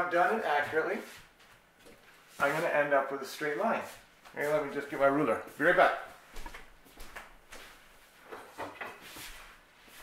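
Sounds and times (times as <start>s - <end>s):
faint knocks and rustling: 6.1s - 10.0s.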